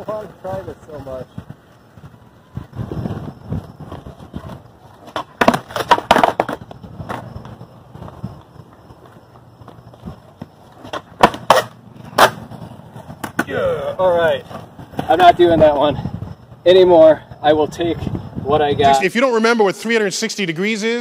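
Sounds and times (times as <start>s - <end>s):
skateboard wheels rolling on concrete: 0.0s - 21.0s
skateboard clacks against ground: 3.9s - 13.6s, 14.4s - 15.2s.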